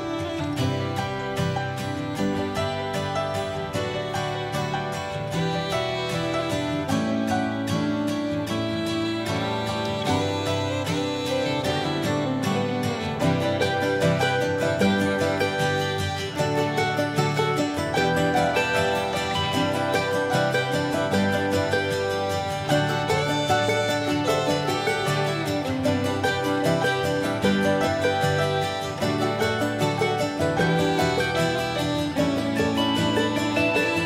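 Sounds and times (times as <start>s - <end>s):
acoustic guitar music with beat: 0.0s - 34.0s.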